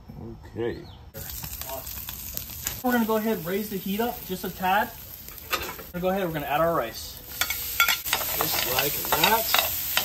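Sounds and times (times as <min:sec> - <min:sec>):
egg sizzling in a skillet: 0:01.2 - 0:06.0, 0:07.1 - 0:10.0
metal spoon scraping a pan: 0:07.3 - 0:10.0.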